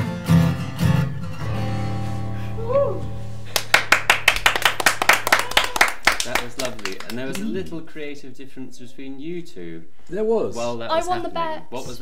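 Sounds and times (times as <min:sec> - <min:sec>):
acoustic guitar chord ringing: 0:00.0 - 0:03.5
people clapping: 0:03.5 - 0:07.8.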